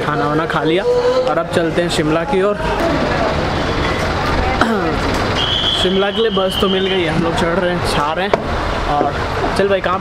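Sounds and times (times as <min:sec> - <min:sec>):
bus engines rumbling: 0:00.0 - 0:10.0.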